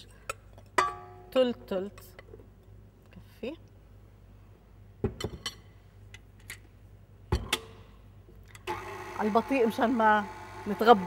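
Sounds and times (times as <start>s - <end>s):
stand mixer motor humming: 8.7s - 11.0s.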